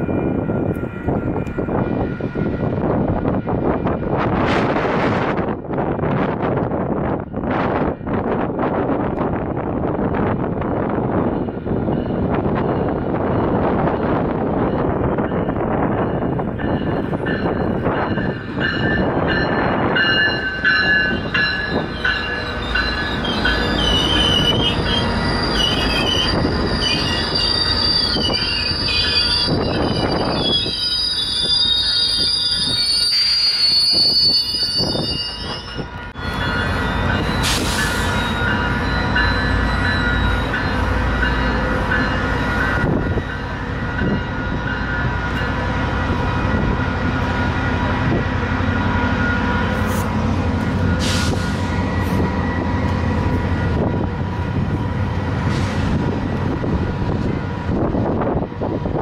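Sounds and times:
train rumbling past: 0.0 - 59.0
steel wheels squealing on rails: 16.1 - 58.7.

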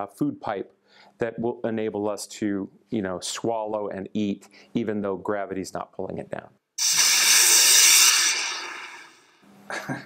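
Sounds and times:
rocket whoosh hiss: 6.8 - 9.4.

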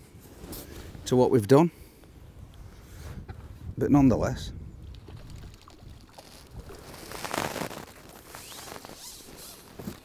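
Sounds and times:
water dripping: 4.9 - 6.4
fish splashing and thrashing: 4.9 - 9.8
net being handled: 6.1 - 10.0.

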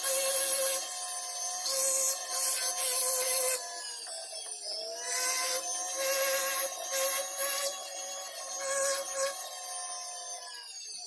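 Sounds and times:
scratchy metal cutting: 0.0 - 3.6, 5.0 - 9.8
rotary tool whining: 0.0 - 11.0.

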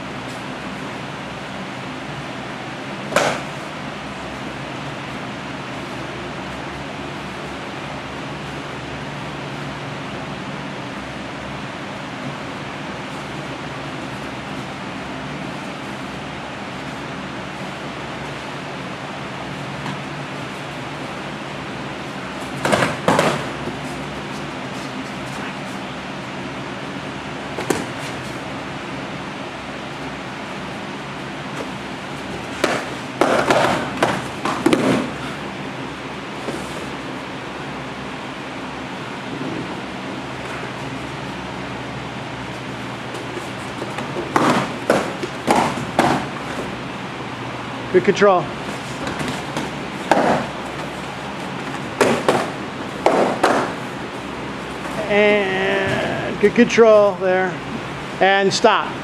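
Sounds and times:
steady hum: 0.0 - 59.0
fighting sticks clacking: 3.1 - 3.6, 22.4 - 25.5, 31.6 - 35.4, 43.2 - 46.6, 48.8 - 54.0.

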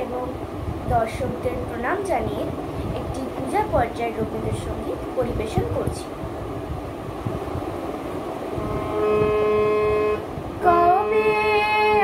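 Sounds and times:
low background hum: 0.0 - 12.0
harmonium holding a chord: 8.6 - 12.0.

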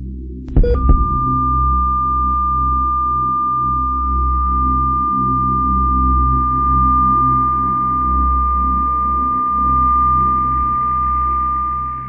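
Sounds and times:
low pulsing drone: 0.0 - 12.0
high electronic tone: 0.6 - 12.0.

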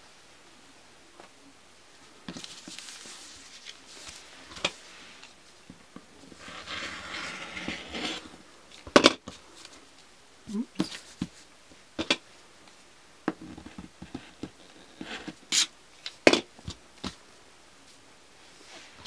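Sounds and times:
paper and fabric rustling: 2.2 - 5.6.

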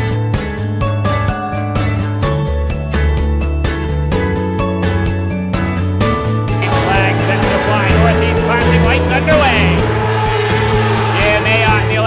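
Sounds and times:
background music: 0.0 - 12.0
race car engines: 6.1 - 12.0.

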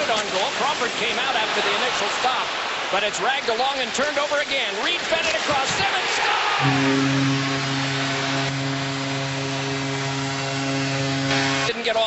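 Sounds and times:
crowd cheering: 0.8 - 3.6, 4.9 - 11.6
arena goal horn blast: 6.6 - 11.8.

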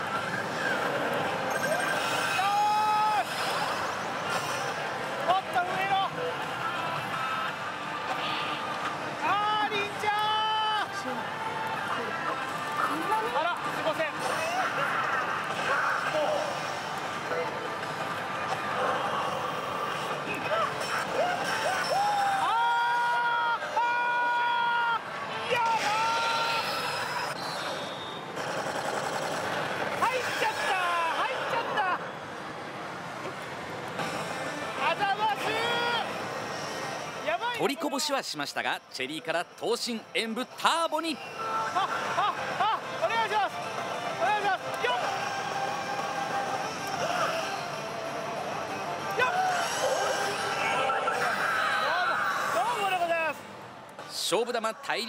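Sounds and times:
gaming parlour din: 0.0 - 55.0
voices: 37.2 - 55.0.

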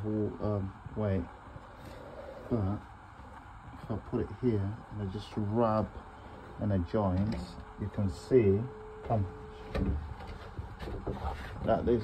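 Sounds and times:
gloved hand rubbing plastic pipe: 10.1 - 11.8.

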